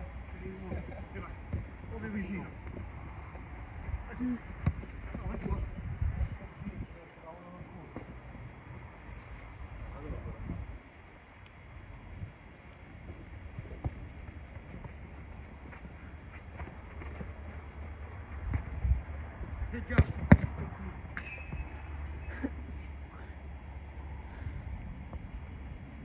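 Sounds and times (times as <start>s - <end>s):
wind rumble on microphone: 2.6s - 10.9s, 17.3s - 21.2s.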